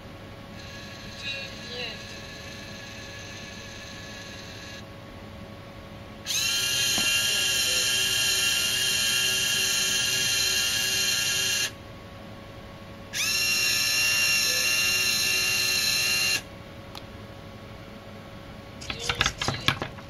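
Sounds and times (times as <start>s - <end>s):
small electric motors whining: 0.6s - 4.9s, 6.2s - 11.8s, 13.1s - 16.5s.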